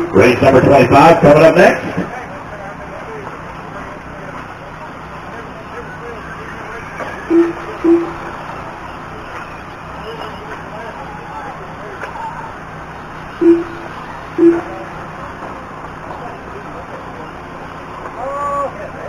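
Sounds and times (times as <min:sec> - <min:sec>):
short electronic beeps: 0:06.4 - 0:08.3, 0:13.3 - 0:14.9.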